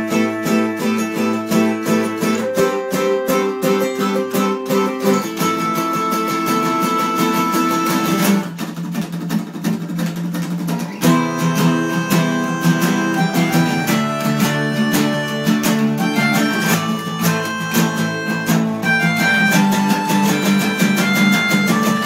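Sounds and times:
acoustic bass guitar: 0.0 - 22.0
acoustic guitars strumming: 0.0 - 22.0.

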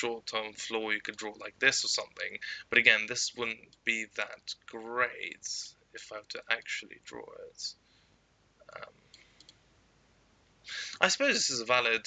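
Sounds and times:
person speaking: 0.0 - 7.8, 8.6 - 9.0, 10.7 - 12.0
computer mouse clicks: 8.7 - 9.6
person breathing in: 10.7 - 11.0.

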